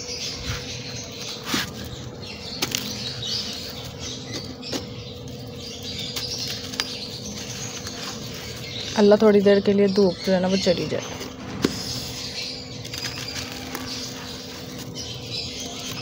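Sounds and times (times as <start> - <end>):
grit pattering on concrete: 0.2 - 16.0
dry block crunching: 1.1 - 10.3, 11.0 - 16.0.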